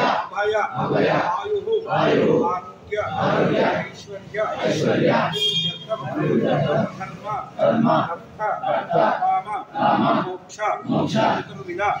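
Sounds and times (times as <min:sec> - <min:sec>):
group chanting in unison: 0:00.0 - 0:12.0.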